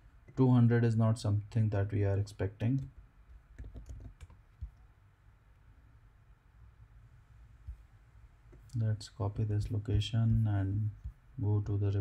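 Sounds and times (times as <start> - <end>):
low room hum: 0.0 - 12.0
computer keyboard keystrokes: 3.6 - 4.8.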